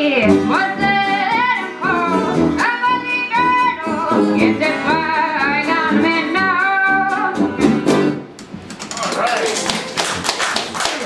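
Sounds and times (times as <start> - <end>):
audience clapping: 8.4 - 11.0.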